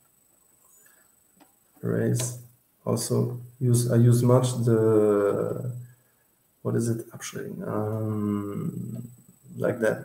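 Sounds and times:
man's voice: 1.8 - 5.8, 6.7 - 10.0.

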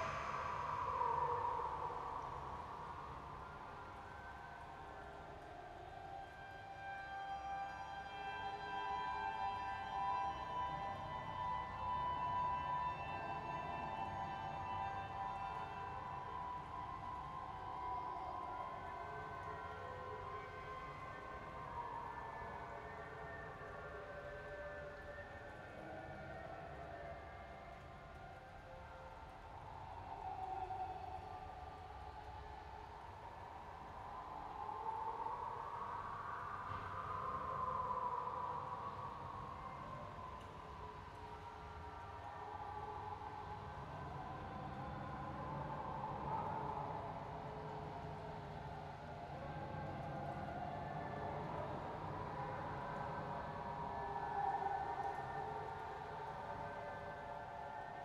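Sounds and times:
spooky ambient drone: 0.0 - 58.0.

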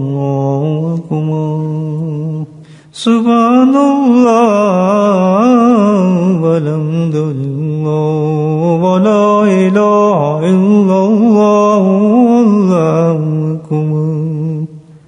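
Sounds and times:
man chanting: 0.0 - 14.9.

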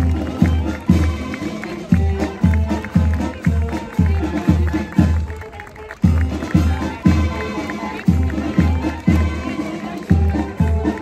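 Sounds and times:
brass marching band playing: 0.0 - 11.0.

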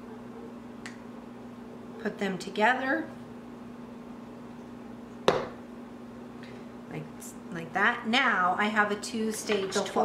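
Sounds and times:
rubber toy knocking on countertop: 5.3 - 5.6.

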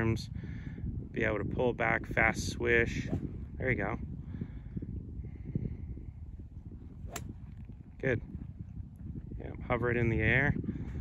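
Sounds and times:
golf club swing whoosh: 2.8 - 3.8, 5.5 - 7.9.

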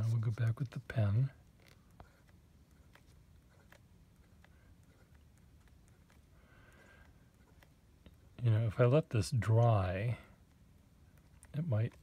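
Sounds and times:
pen nib scratching paper: 1.5 - 7.9.

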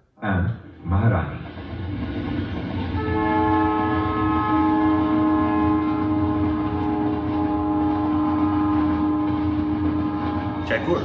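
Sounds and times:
train rumble: 0.0 - 11.0
train horn: 2.8 - 11.0.

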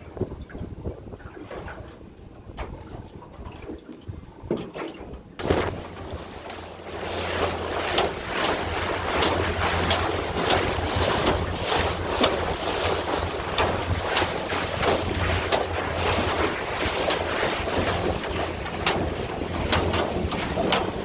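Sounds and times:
outboard motor running: 0.0 - 21.0
wind buffeting microphone: 0.0 - 21.0
rushing water: 1.2 - 21.0.

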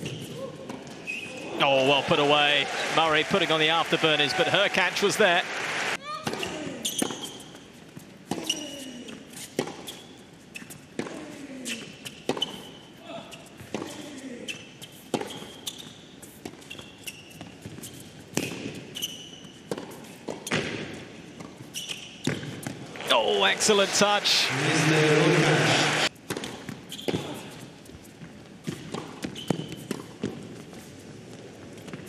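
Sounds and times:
shoe squeaks on court: 1.0 - 1.4, 6.4 - 7.7, 8.3 - 10.8, 11.7 - 13.6, 14.5 - 20.6, 21.5 - 22.4, 26.8 - 27.6, 28.7 - 30.1
racket hitting tennis ball: 17.6 - 19.0, 26.2 - 27.4.

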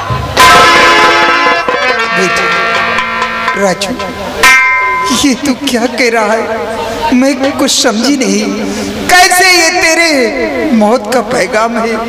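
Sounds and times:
bell-like musical chord ringing: 0.4 - 5.7.

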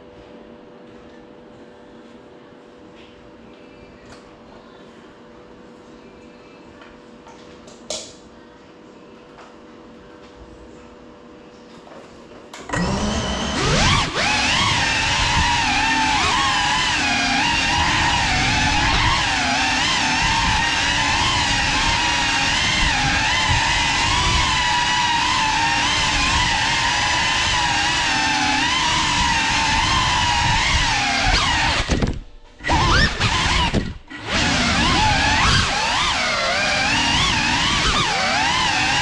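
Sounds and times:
drone motors whining: 12.7 - 39.0.

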